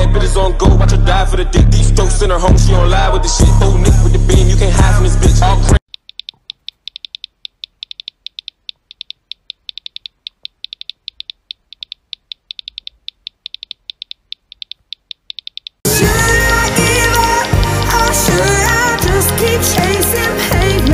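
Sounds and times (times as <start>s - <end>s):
music: 0.0s - 5.8s, 15.9s - 20.9s
phone keyboard clicks: 5.9s - 15.8s.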